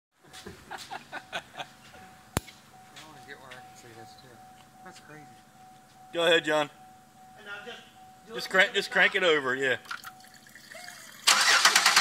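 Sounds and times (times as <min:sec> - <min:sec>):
men talking: 0:02.9 - 0:05.5, 0:06.1 - 0:09.8.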